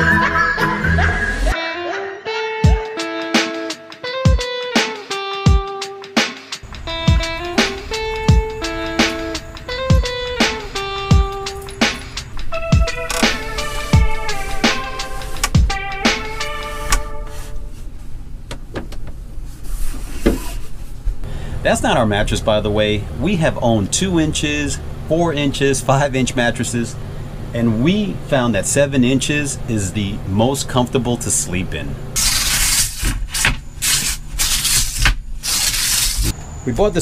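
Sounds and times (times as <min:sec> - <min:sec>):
fabric scraping rustle: 0:16.5 - 0:18.0, 0:19.4 - 0:21.2, 0:32.2 - 0:36.3
wooden bed slats rubbing: 0:18.7 - 0:21.1.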